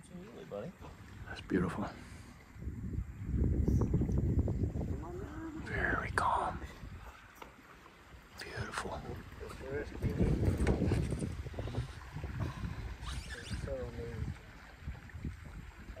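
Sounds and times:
man speaking softly: 0:00.0 - 0:02.3, 0:05.0 - 0:06.9, 0:08.4 - 0:10.6, 0:13.3 - 0:14.4
wind buffeting microphone: 0:00.0 - 0:07.4, 0:08.1 - 0:16.0.

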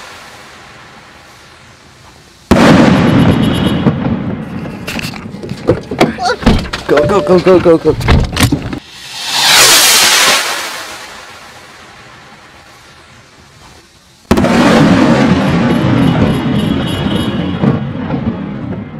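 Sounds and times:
rocket launching whoosh: 0:00.0 - 0:01.3, 0:08.8 - 0:12.7
loud firework bang with echo: 0:02.5 - 0:04.5.

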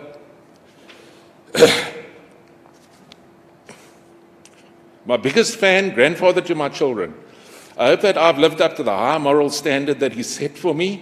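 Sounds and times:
man coughing: 0:01.5 - 0:02.2.

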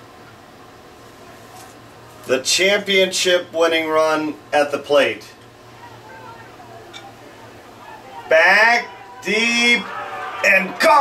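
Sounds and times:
steady low hum: 0:00.0 - 0:11.0
distant voices: 0:01.1 - 0:11.0.

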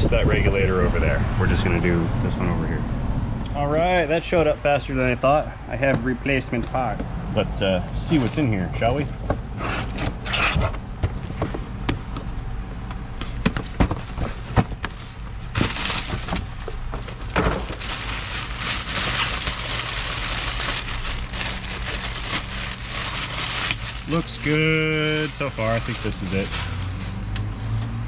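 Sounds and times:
cardboard box knocks and scrapes: 0:09.3 - 0:12.3, 0:13.4 - 0:17.8
plastic bag crinkling: 0:14.9 - 0:27.1.

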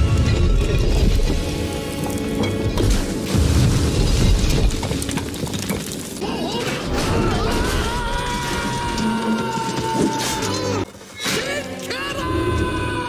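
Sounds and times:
film score music: 0:00.0 - 0:13.0.

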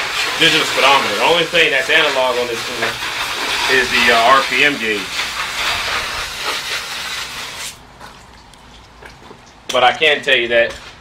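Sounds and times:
garden hose spraying water: 0:00.0 - 0:10.4.

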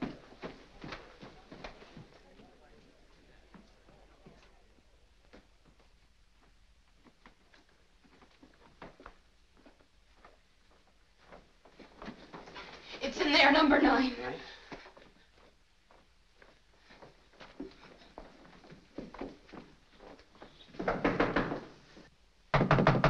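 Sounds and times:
faint footsteps: 0:00.0 - 0:22.1
fist pounding on wooden door: 0:22.5 - 0:23.0.

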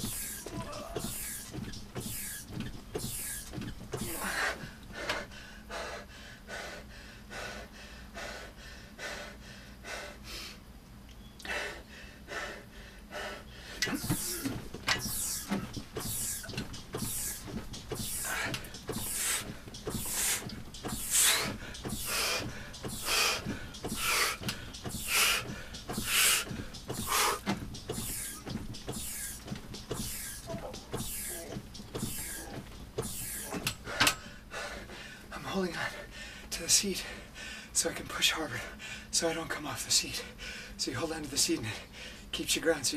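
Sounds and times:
rowing machine hydraulic shock: 0:00.0 - 0:05.3, 0:13.7 - 0:35.0
hard rhythmic breathing: 0:00.0 - 0:10.8, 0:11.4 - 0:42.8.

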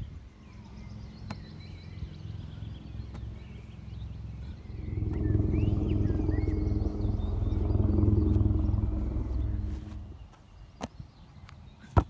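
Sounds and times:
bird chirps: 0:00.0 - 0:10.4
engine running loud and low: 0:00.0 - 0:10.4.

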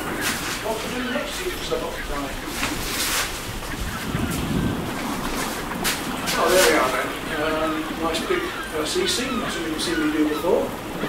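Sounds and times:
steady background hiss: 0:00.0 - 0:11.0
man speaking: 0:00.6 - 0:02.5, 0:06.3 - 0:10.8.

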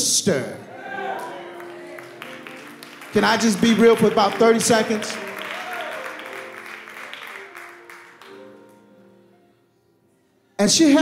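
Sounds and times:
soft keyboard chords: 0:00.8 - 0:11.0.

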